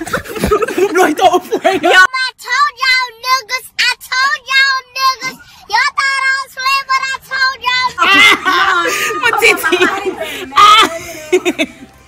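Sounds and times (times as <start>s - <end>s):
women laughing and talking: 0.0s - 2.1s, 7.8s - 12.0s.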